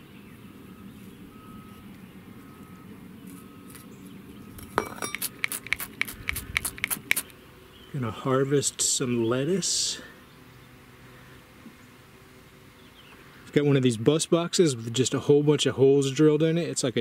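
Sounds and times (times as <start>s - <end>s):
hand tool clicking in soil: 5.1s - 7.3s.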